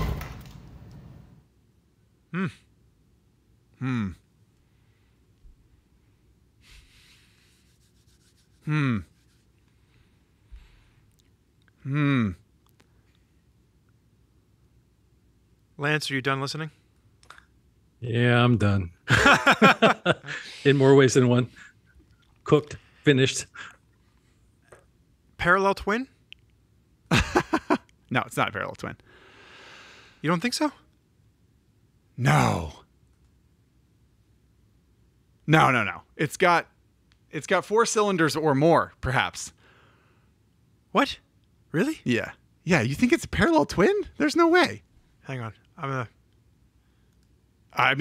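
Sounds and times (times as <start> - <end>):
man laughing: 19.1 - 21.0, 27.1 - 27.9.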